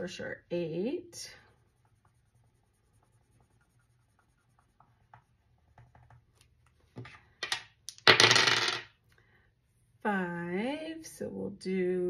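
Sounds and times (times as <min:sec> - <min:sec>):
pen scratching on paper: 0:01.6 - 0:06.3
dice clattering on a tabletop: 0:07.0 - 0:09.0.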